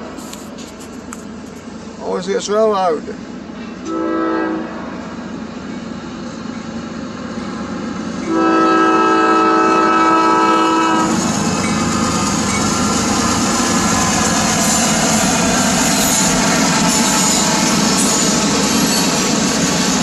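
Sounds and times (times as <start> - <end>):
freight train passing: 0.0 - 20.0
train air horn blast: 3.8 - 5.0, 8.3 - 11.2.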